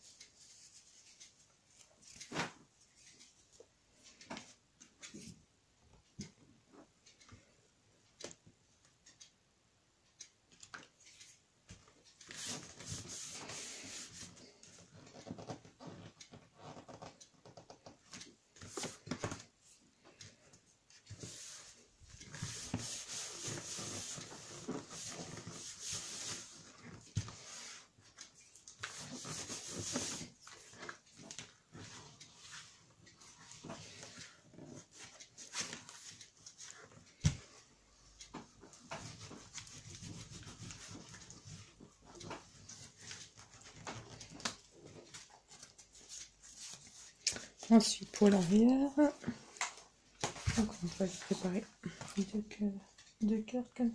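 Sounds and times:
hands rubbing paper: 0:12.2 - 0:14.7, 0:21.2 - 0:36.9, 0:38.8 - 0:49.2.

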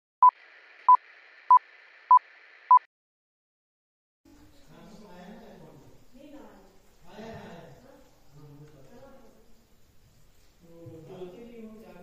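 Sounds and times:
faint hiss: 0:04.3 - 0:12.0.

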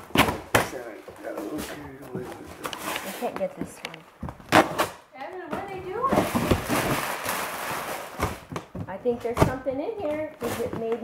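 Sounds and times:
paper and tape tearing: 0:04.5 - 0:05.0, 0:06.1 - 0:08.5.

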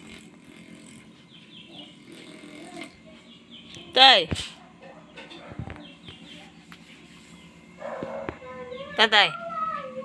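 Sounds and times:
electric massager humming: 0:00.0 - 0:10.0.

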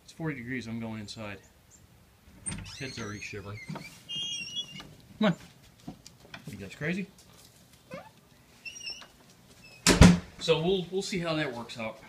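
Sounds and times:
faint high squeaks: 0:02.4 - 0:04.9, 0:07.9 - 0:09.9
door slamming shut: 0:09.8 - 0:10.3.

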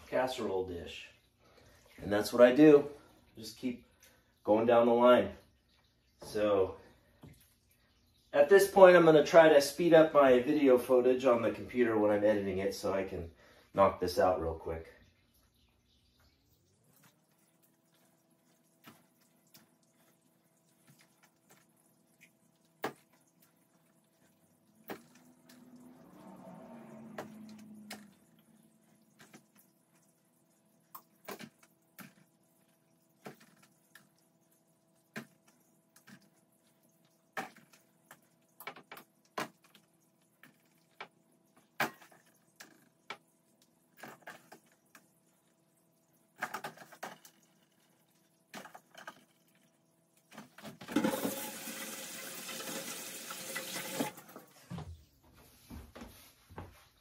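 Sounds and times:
kitchen tap running: 0:27.1 - 0:54.6.

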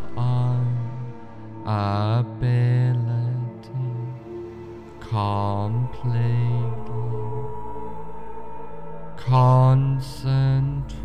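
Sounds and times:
ambient drone music: 0:00.0 - 0:11.0.

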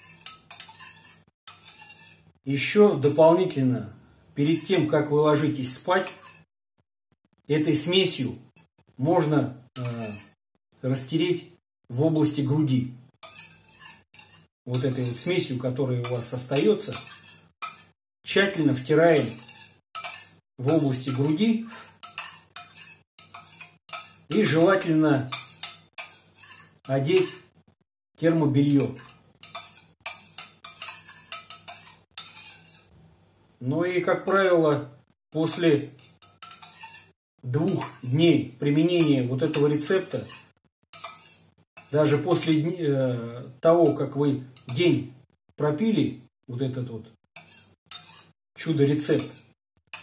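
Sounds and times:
teaspoon scraping metal bowl: 0:00.0 - 0:03.2, 0:05.8 - 0:06.5, 0:09.7 - 0:10.4, 0:13.1 - 0:27.6, 0:28.6 - 0:33.0, 0:35.4 - 0:42.5, 0:44.6 - 0:44.9, 0:47.3 - 0:48.4, 0:49.0 - 0:50.0.

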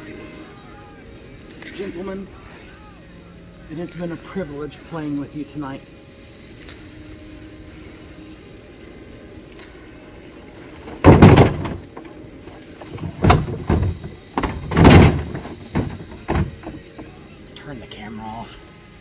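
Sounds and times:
knocks and thumps in bin: 0:10.9 - 0:12.0, 0:12.9 - 0:16.8
bin lid banging shut: 0:11.0 - 0:11.9, 0:12.9 - 0:16.8
tv crashing into plastic bin: 0:11.0 - 0:11.9, 0:12.9 - 0:16.8.

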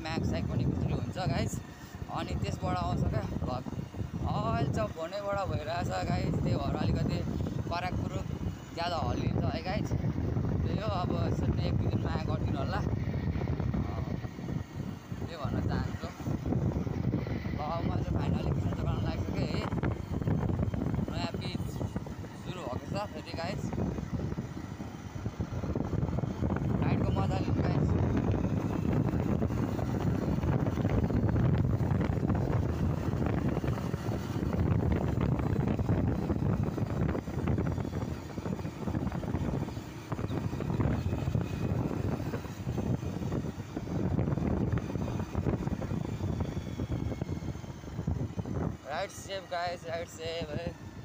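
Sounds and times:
motorcycle running: 0:00.0 - 0:51.0
wind buffeting microphone: 0:00.0 - 0:51.0.

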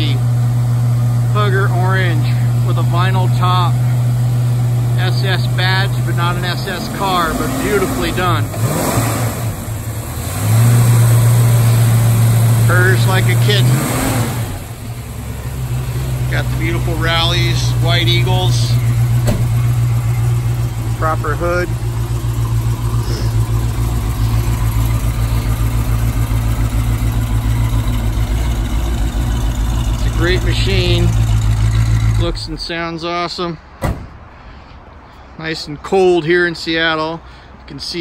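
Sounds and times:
car engine running: 0:00.0 - 0:32.6.

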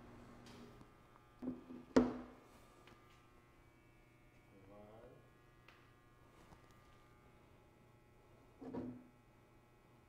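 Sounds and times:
faint electrical hum and buzz: 0:00.0 - 0:10.0.

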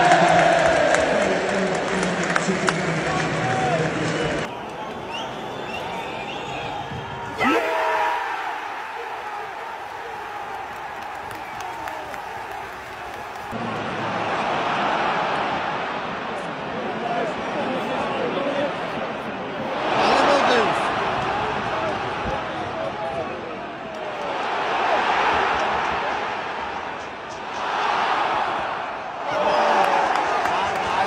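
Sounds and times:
stadium crowd roaring: 0:00.0 - 0:31.0.

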